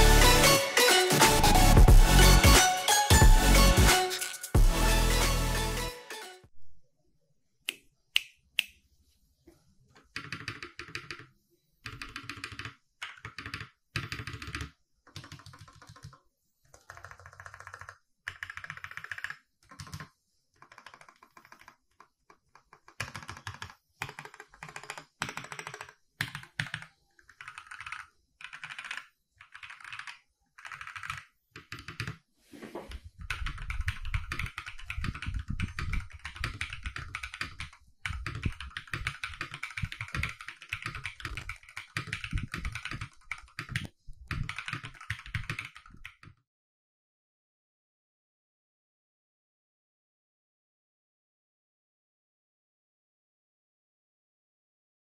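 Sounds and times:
mechanical keyboard typing: 10.0 - 32.2, 33.2 - 46.4.

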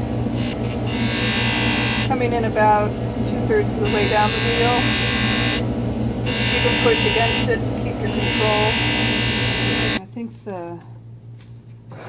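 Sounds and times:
polishing lathe humming: 0.0 - 10.0.

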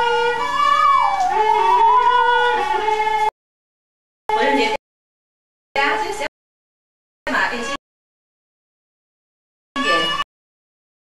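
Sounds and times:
violin bowed sustained notes: 0.0 - 3.3, 9.8 - 10.2.

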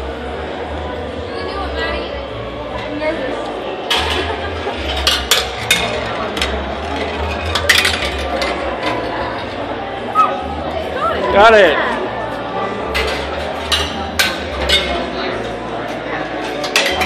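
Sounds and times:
crowd chatter: 0.0 - 17.0
balls clinking through metal chutes: 3.9 - 9.6, 16.3 - 17.0.

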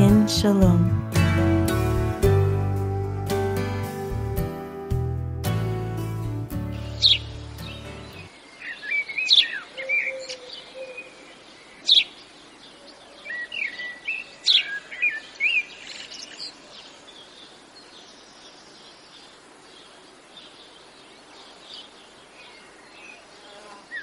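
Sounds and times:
music: 0.0 - 8.3
faint outdoor hiss: 0.0 - 24.0
birds chirping and singing: 6.6 - 24.0.

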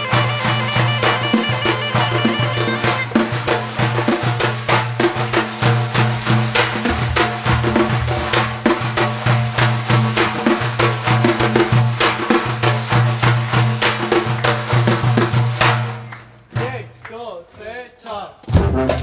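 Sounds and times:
frame drum rhythm: 0.0 - 17.6, 18.4 - 19.0.

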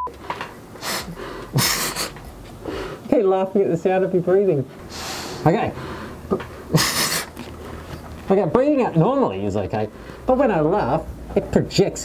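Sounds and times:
breathing through snorkel mask: 0.8 - 3.0, 4.9 - 8.0.

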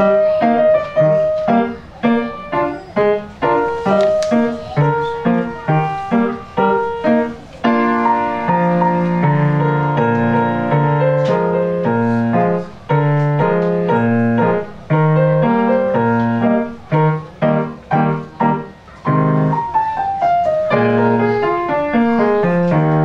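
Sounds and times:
grand piano chords and bass notes: 0.0 - 23.0.

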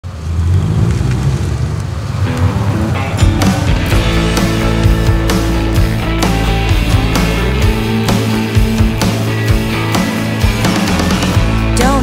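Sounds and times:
low rumble: 0.0 - 12.0
pitched notes: 2.3 - 12.0
band playing with drums: 3.2 - 12.0.

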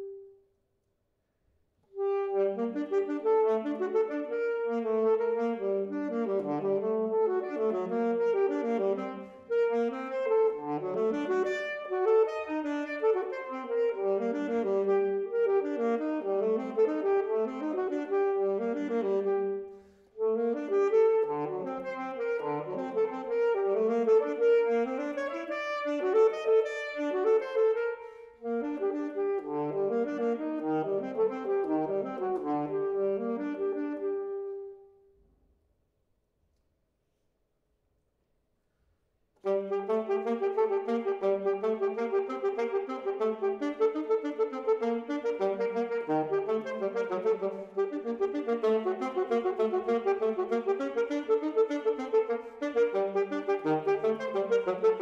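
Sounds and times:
saxophone solo: 0.0 - 0.4, 1.9 - 35.0, 39.4 - 55.0.

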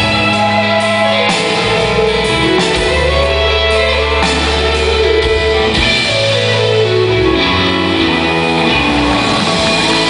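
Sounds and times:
drums: 0.0 - 10.0
guitar: 0.0 - 10.0
rock band playing live: 0.0 - 10.0.

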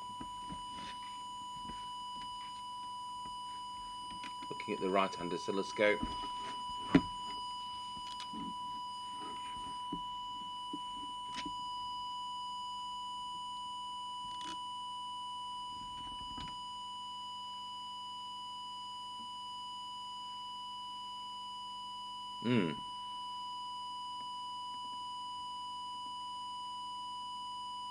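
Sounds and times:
steady test tone: 0.0 - 11.7.

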